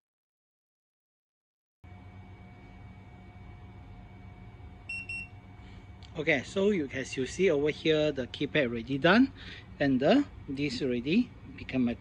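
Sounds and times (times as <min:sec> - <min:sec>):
faint steady hum: 0:01.9 - 0:12.0.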